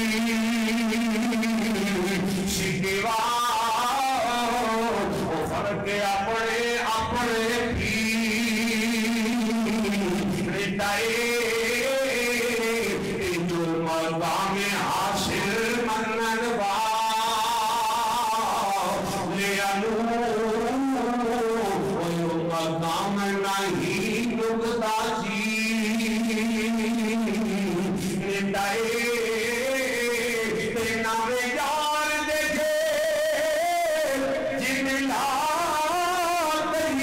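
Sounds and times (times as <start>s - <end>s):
man chanting: 0.0s - 37.0s.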